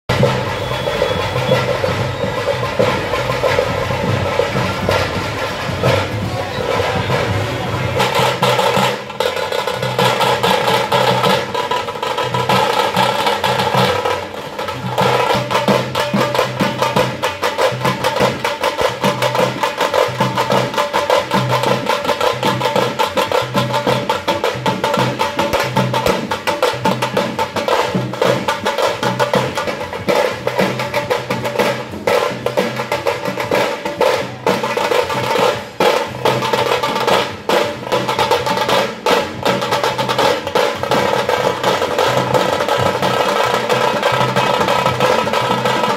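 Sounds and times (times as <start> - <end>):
crowd voices: 0.1 - 12.0
drum band beating fast rhythm: 0.1 - 45.9.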